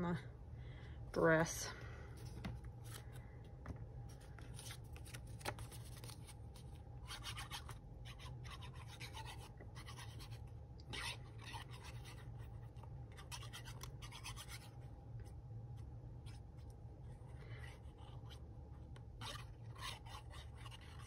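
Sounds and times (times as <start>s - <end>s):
thin paper rustling and scratching: 4.0s - 10.4s.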